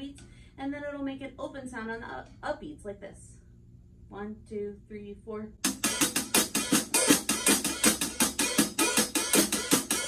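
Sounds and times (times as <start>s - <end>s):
bass drum: 5.6s - 10.0s
hi-hat: 5.6s - 10.0s.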